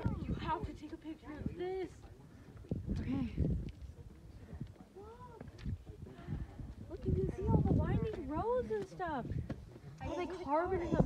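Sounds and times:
low rumbling microphone noise: 1.4 - 10.0.

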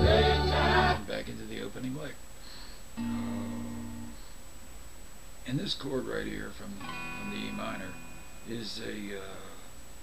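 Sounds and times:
electric guitar chord ringing: 3.0 - 4.2, 6.8 - 8.8.

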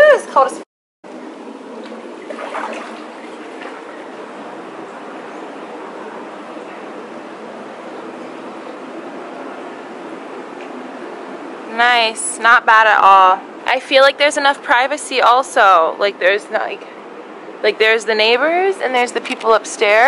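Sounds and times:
running water in a pool: 1.1 - 8.9.

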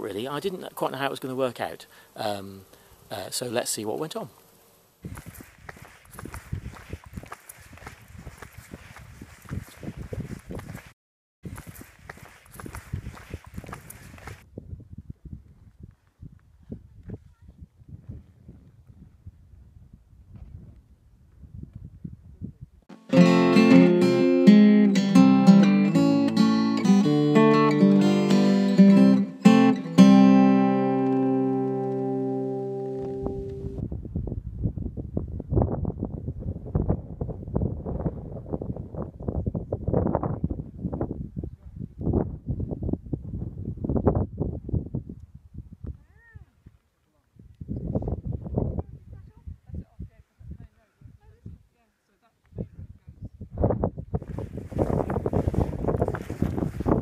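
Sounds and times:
acoustic guitar plucked notes: 22.9 - 33.8.

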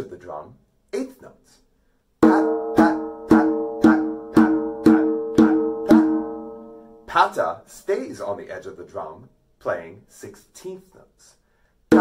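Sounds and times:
djembe strokes: 2.2 - 7.1.

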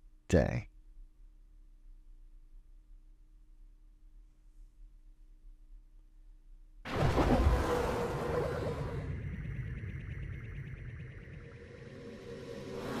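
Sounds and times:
synthesized rush with deep rumble: 7.1 - 13.0.

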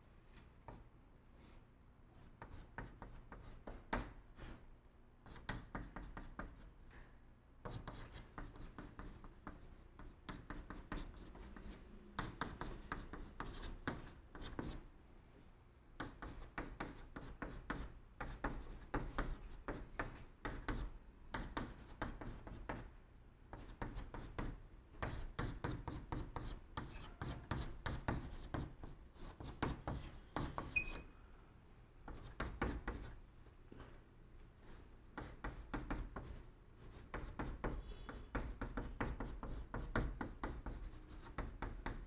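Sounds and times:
chalk tapping and scratching on blackboard: 0.6 - 0.9, 2.1 - 4.6, 5.2 - 6.7, 7.6 - 14.9, 16.0 - 22.9, 23.5 - 31.1, 32.0 - 33.9, 34.7 - 42.0.

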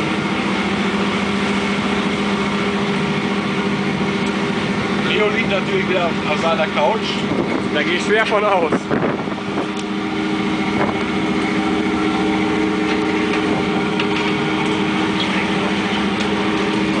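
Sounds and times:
boat engine humming: 0.0 - 17.0.

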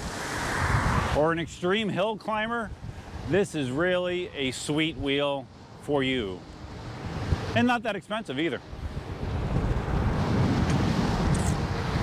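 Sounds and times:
wind buffeting microphone: 0.0 - 1.8, 2.4 - 5.3, 6.2 - 7.6, 8.6 - 12.0.

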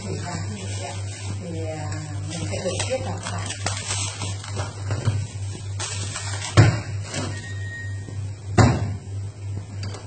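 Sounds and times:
water boiling in a pot: 0.0 - 9.8.

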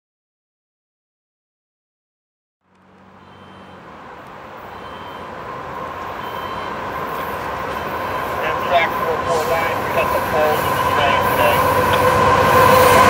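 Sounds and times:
train rumbling: 2.7 - 13.0.

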